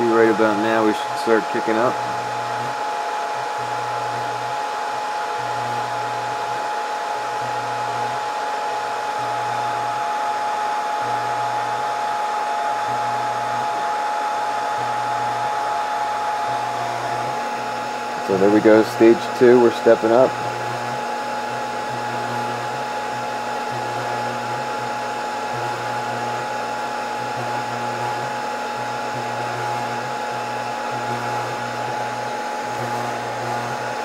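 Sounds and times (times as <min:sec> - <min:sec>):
hot-air blowers rushing: 0:00.0 - 0:34.0.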